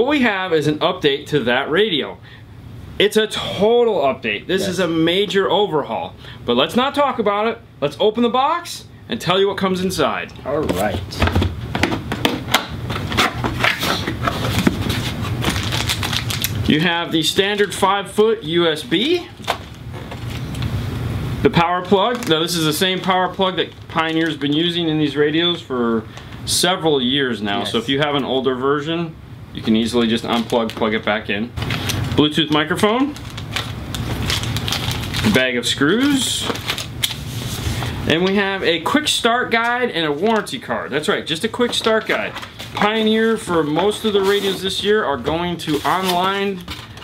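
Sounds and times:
steady low hum: 0.0s - 47.0s
plastic packaging rustling: 10.8s - 17.9s, 18.8s - 20.7s, 21.8s - 26.3s, 29.8s - 38.6s, 39.4s - 47.0s.

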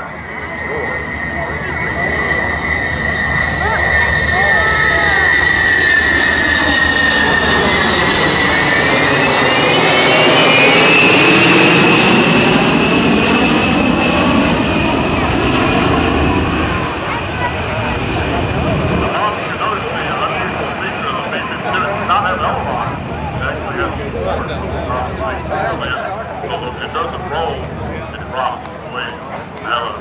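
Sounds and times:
jet bomber flyby whine and rumble: 0.0s - 30.0s.

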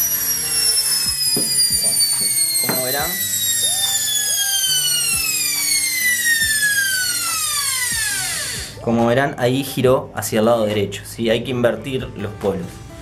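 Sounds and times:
motor whine falling in pitch: 0.0s - 8.8s.

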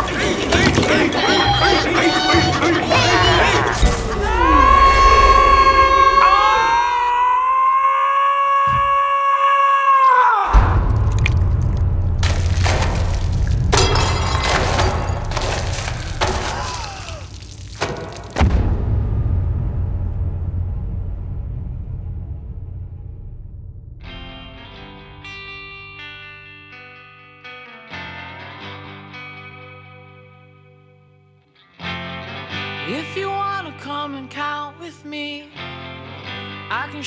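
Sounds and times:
long high scream: 4.2s - 10.5s
rumbling blast: 10.5s - 13.8s, 18.2s - 24.5s
crashes and thuds: 10.5s - 24.0s
shattering: 10.9s - 18.5s.

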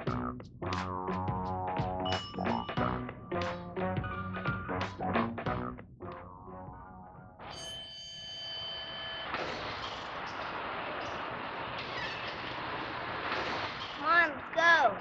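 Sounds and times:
music: 0.0s - 7.6s
ringing tone with overtones: 6.8s - 9.4s.

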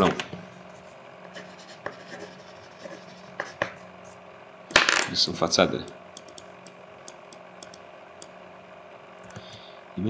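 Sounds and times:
low steady hum: 0.0s - 10.0s
sharp click: 5.8s - 8.3s.

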